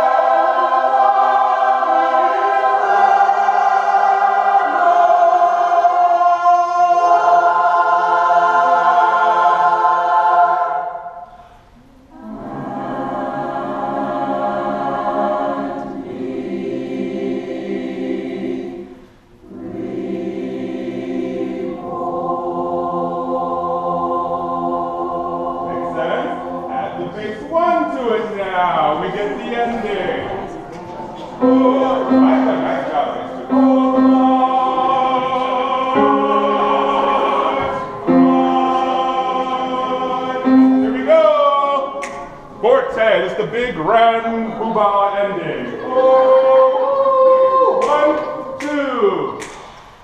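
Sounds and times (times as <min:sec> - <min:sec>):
choir singing held chords: 0:00.0 - 0:50.0.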